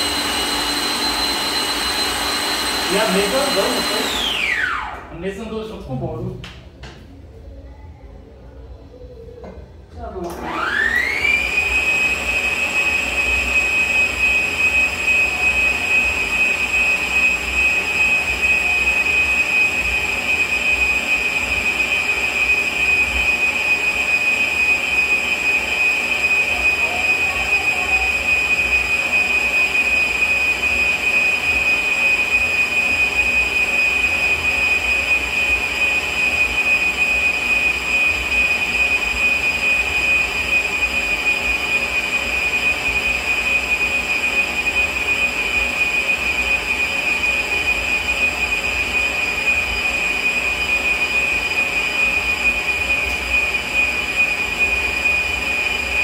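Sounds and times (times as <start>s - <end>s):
stand mixer motor whining: 0.0s - 5.1s, 10.3s - 56.0s.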